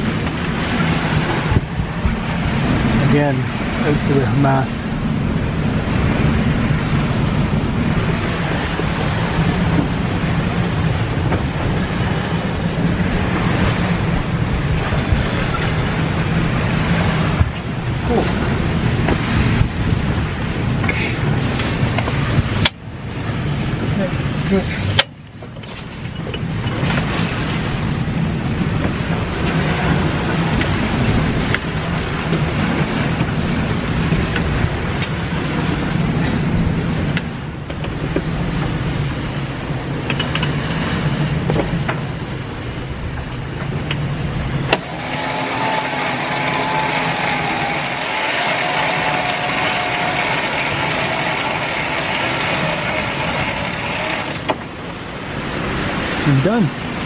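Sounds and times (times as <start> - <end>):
wind and sea rushing: 0.0 - 57.0
wavering whine: 44.6 - 54.6.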